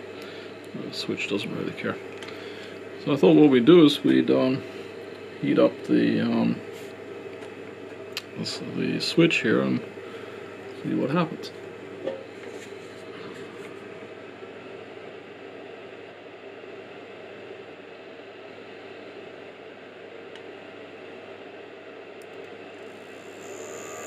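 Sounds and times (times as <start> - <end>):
cooling fan whine: 0.0 - 24.0.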